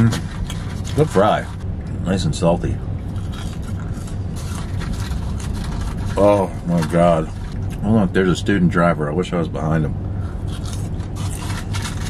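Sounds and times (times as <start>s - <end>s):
man chewing fries: 0.0s - 2.0s, 2.8s - 8.1s, 10.2s - 12.0s
low rumble inside car cabin: 0.0s - 12.0s.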